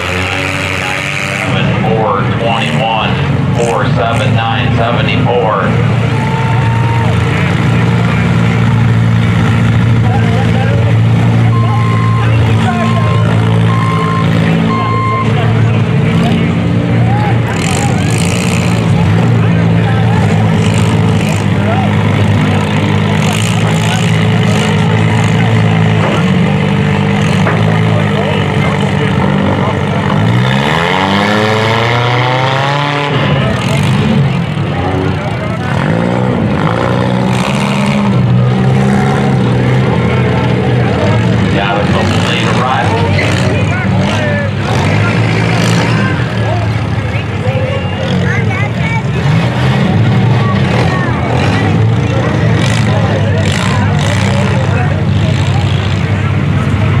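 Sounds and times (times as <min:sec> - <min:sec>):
sharp engine bangs: 0:00.0 - 0:06.2, 0:07.0 - 0:47.2
car engines running at low revs: 0:00.0 - 0:57.0
engine revving with rising whine: 0:00.0 - 0:57.0.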